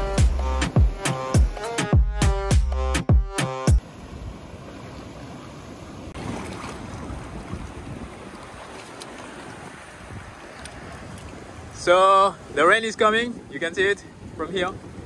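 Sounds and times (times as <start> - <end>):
background music: 0.0 - 3.8
sea surf on rocks: 3.8 - 15.0
wind on microphone: 6.2 - 15.0.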